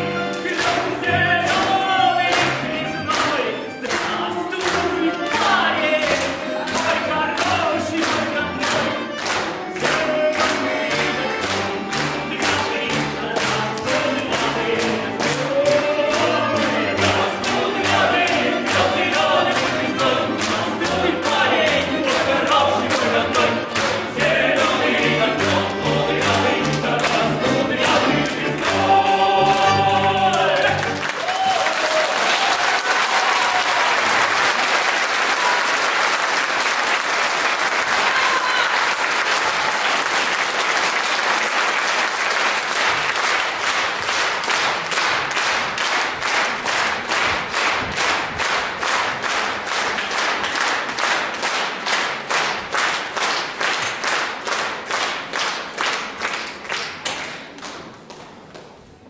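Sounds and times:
rhythmic clapping in unison: 0.0s - 59.0s
male vocal group singing: 0.2s - 31.0s
audience applause: 30.4s - 57.6s.

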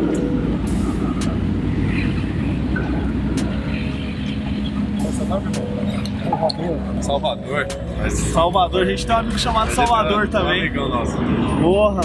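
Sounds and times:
city street traffic rumble: 0.0s - 12.0s
people talking: 3.4s - 12.0s.

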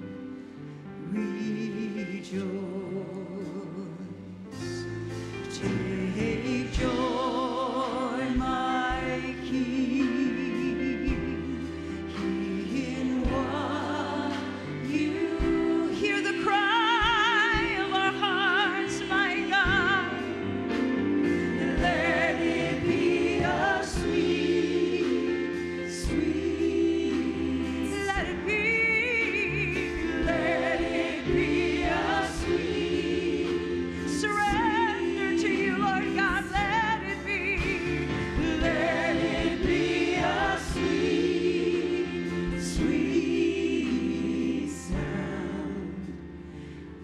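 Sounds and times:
live band chords and bass: 4.6s - 46.3s
women singing gospel: 5.5s - 46.3s
live band: 33.4s - 43.0s.

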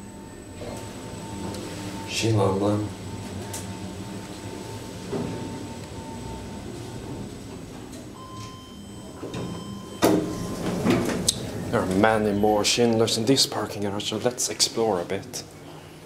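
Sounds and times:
elevator car hum: 0.0s - 13.3s
sliding elevator doors opening: 6.4s - 13.2s
short tone: 8.2s - 10.9s.

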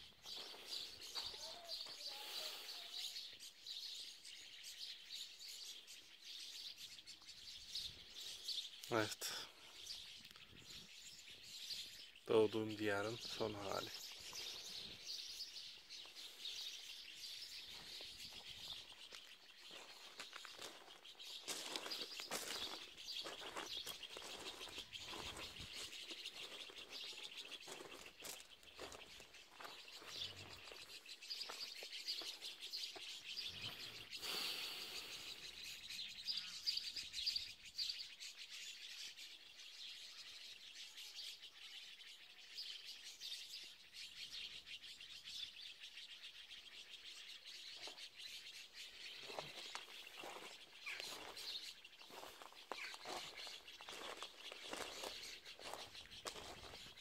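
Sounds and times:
small birds chirping: 0.0s - 57.0s.

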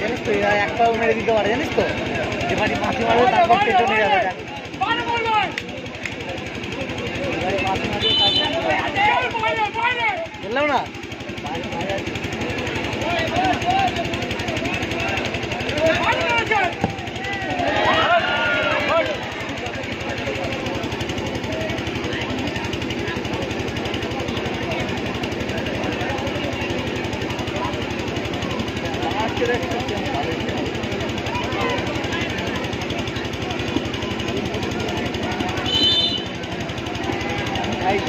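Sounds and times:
crowd chattering: 0.0s - 38.0s
people shouting: 13.0s - 19.8s.

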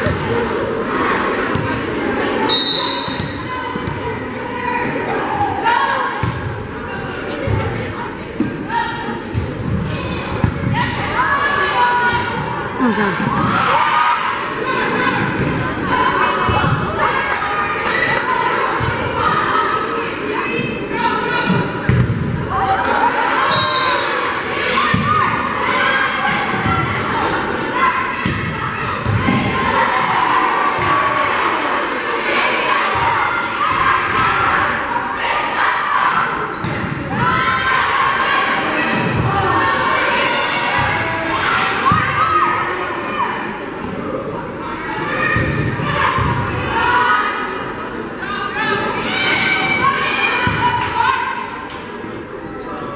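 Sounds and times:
spectators talking: 0.0s - 52.9s.

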